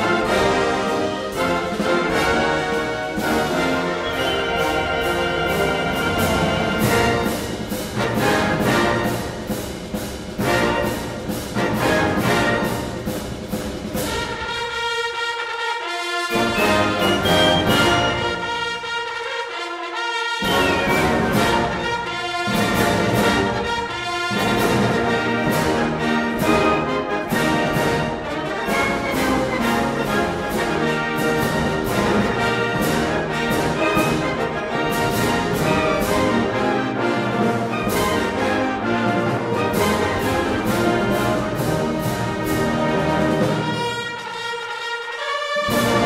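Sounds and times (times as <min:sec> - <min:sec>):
steady drum beat: 0:00.0 - 0:14.8, 0:16.3 - 0:18.9, 0:20.5 - 0:44.2
military band brass music: 0:00.0 - 0:46.0.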